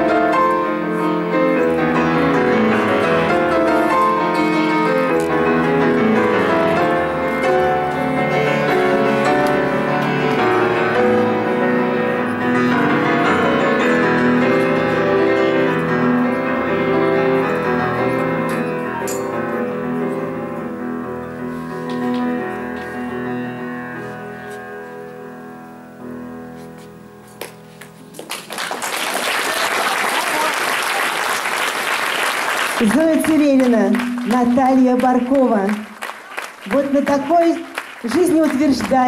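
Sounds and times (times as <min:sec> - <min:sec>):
grand piano classical piece: 0:00.0 - 0:39.0.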